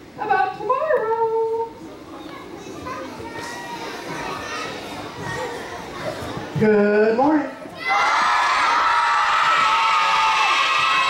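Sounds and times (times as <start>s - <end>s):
children chattering in a hall: 0.0s - 11.0s.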